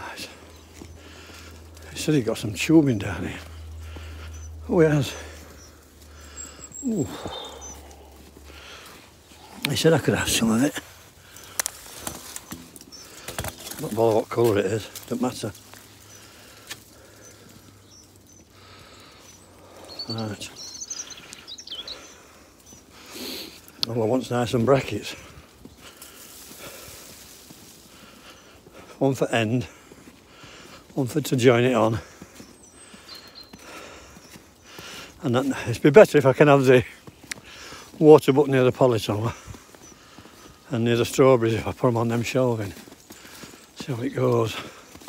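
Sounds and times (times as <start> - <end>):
footsteps in deep snow: 18.6 - 45.0.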